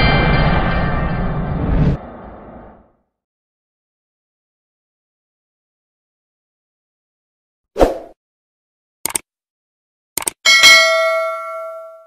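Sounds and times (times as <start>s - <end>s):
quick double click: 9.0s - 9.2s, 10.2s - 10.4s
bell ding: 10.5s - 12.0s.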